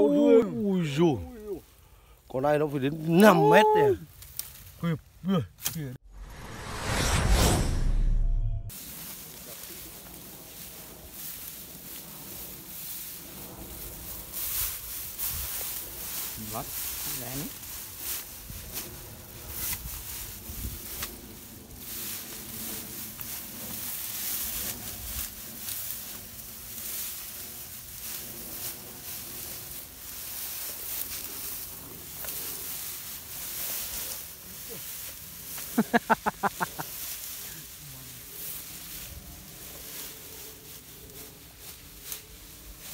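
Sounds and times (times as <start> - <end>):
grass rustling and crackling: 0.0 - 6.9, 8.7 - 42.9
whooshing sound effect: 6.0 - 8.8.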